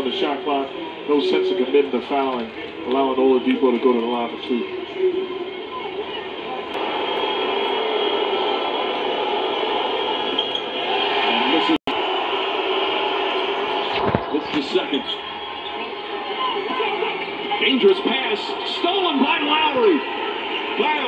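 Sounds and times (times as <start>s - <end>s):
arena crowd voices: 0.0s - 21.0s.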